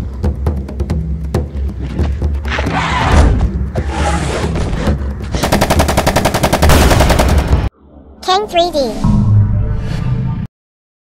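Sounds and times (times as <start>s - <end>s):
rapid automatic gunfire: 5.4s - 7.7s.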